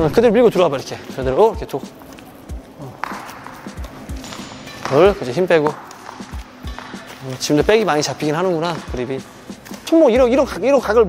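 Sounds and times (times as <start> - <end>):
footsteps on court floor: 0.8 - 10.3
racket hitting shuttlecock: 1.8 - 9.9.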